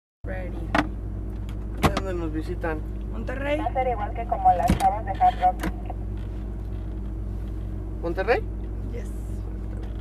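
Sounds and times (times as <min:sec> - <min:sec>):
car engine idling: 0:00.3 - 0:10.0.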